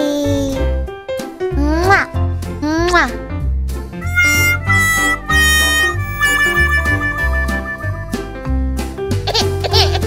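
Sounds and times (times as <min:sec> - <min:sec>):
repeating bass line: 0:04.0 - 0:08.8
melody of long held notes: 0:04.0 - 0:09.0.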